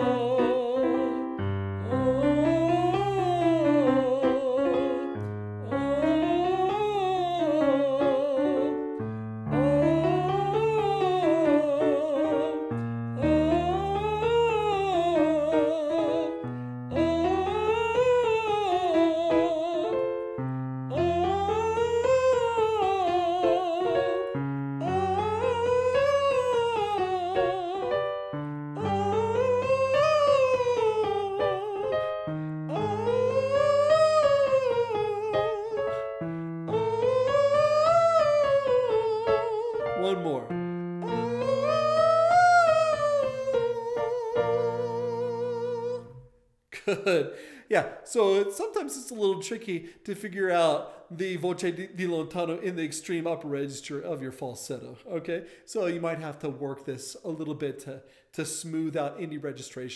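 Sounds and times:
man singing falsetto scales: 0.0s - 8.9s, 9.6s - 20.3s, 20.9s - 47.4s
piano chords: 0.0s - 46.3s.

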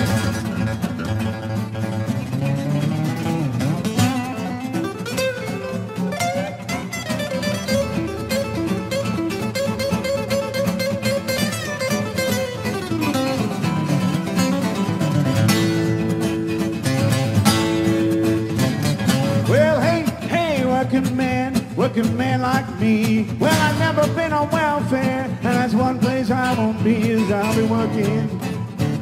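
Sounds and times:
lead acoustic guitar picking: 0.0s - 29.0s
rhythm acoustic guitars: 0.0s - 29.0s.

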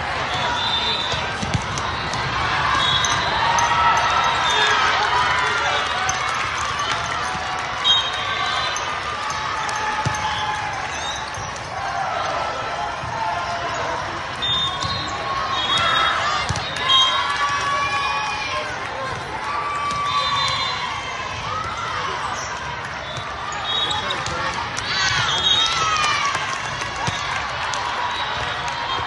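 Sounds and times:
volleyball hits: 0.4s - 4.6s, 9.2s - 12.4s, 14.6s - 17.7s, 19.0s - 29.0s
sneakers squeaking on court: 10.0s - 11.7s, 21.6s - 25.8s.

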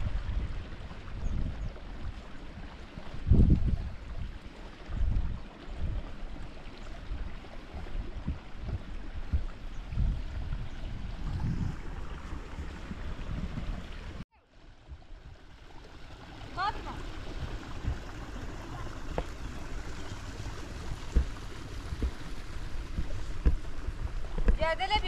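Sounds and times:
wind on microphone: 0.0s - 15.5s, 16.6s - 25.0s
running water: 0.0s - 25.0s.

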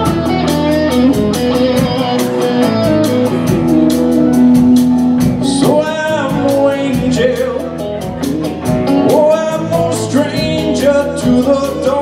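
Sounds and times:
bass: 0.0s - 12.0s
keyboard: 0.0s - 12.0s
lead guitar bending notes: 0.0s - 12.0s
steady drumbeat: 0.0s - 12.0s.

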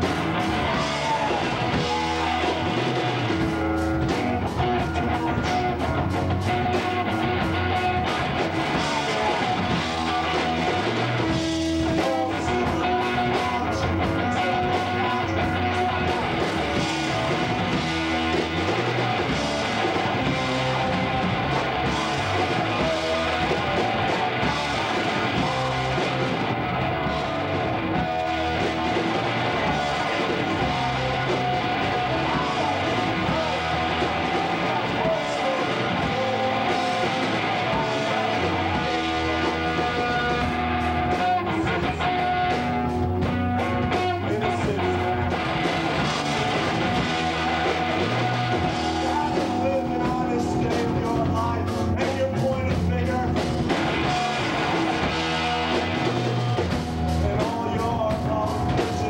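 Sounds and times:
bass guitar: 0.0s - 59.0s
drum kit: 0.0s - 59.0s
electric guitar: 0.0s - 59.0s.

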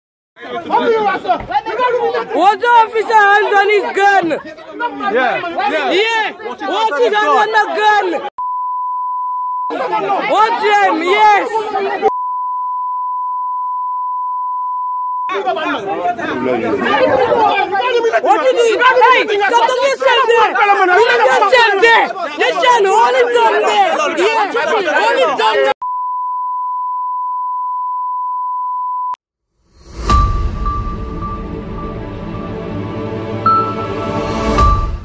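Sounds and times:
speech: 0.4s - 8.3s, 9.7s - 12.1s, 15.3s - 25.8s
censor bleep tone: 8.4s - 9.8s, 12.1s - 15.3s, 25.8s - 29.2s
intro music: 29.8s - 35.0s.

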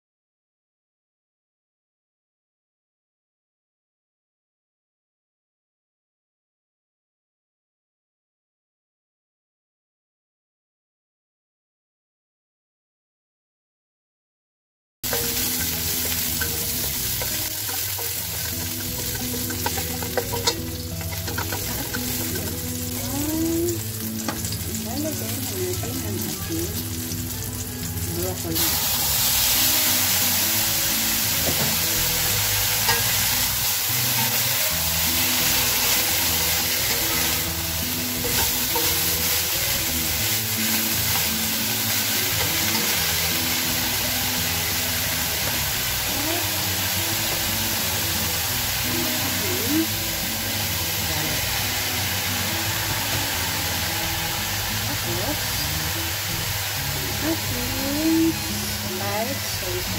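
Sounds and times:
food sizzling in oil: 15.0s - 59.9s
spatula stirring in wok: 15.1s - 23.1s.

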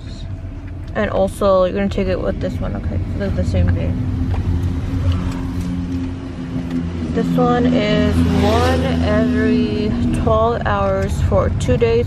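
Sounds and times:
car engine drone from cabin: 0.0s - 12.0s.

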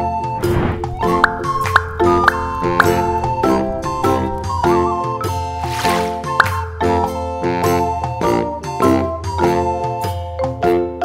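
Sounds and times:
cheerful children's music: 0.5s - 11.0s.

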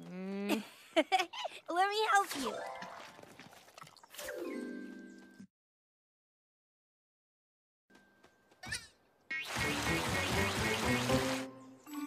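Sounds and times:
music playing: 9.5s - 12.0s.

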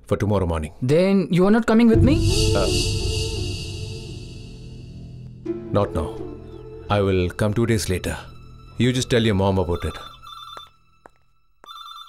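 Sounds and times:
telephone electronic trilling ring: 9.6s - 10.8s, 11.6s - 12.0s.

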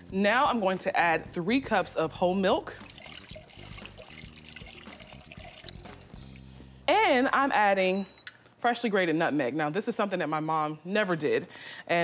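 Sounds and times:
quiet background music: 0.0s - 12.0s
milk pouring into saucepan: 2.7s - 6.7s.

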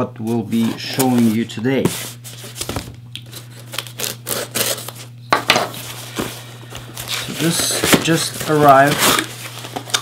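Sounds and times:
tape tearing: 2.4s - 5.1s, 5.7s - 10.0s
knife slitting packing tape: 3.3s - 5.0s
cardboard flaps rustling: 5.8s - 10.0s.

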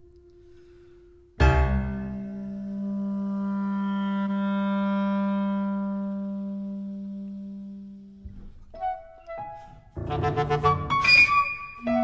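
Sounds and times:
clarinet holding low note: 0.0s - 12.0s.

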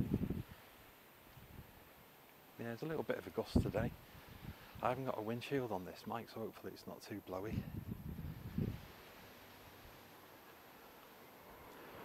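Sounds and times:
wind buffeting microphone: 0.0s - 0.6s, 3.4s - 5.0s, 7.4s - 9.0s
faint outdoor hiss: 0.0s - 12.0s.

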